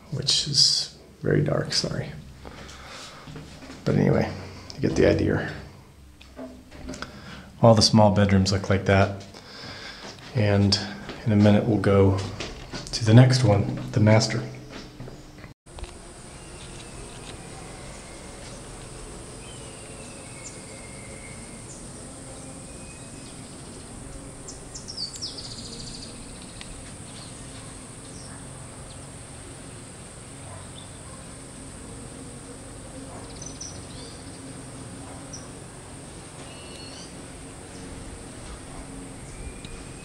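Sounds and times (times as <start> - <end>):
faint low hum: 0.0 - 40.0
high-pitched insect drone: 15.9 - 40.0.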